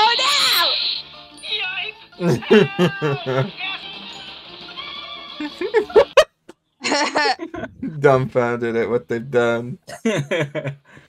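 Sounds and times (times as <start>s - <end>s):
cartoon music: 0.0s - 1.0s, 1.6s - 3.6s
cartoon voices: 2.2s - 3.5s, 6.9s - 8.0s
laughter: 2.2s - 3.5s, 5.6s - 7.9s, 9.9s - 10.9s.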